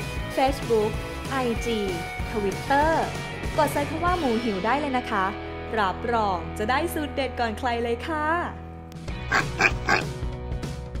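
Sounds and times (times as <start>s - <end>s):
cartoon pig oinks: 9.3s - 10.1s.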